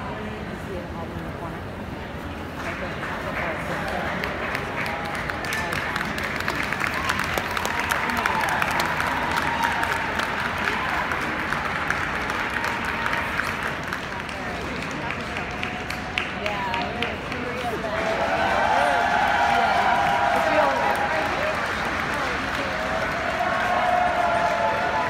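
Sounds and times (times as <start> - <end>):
murmur of crowd chatter: 0.0 - 25.0
spectators clapping: 2.5 - 25.0.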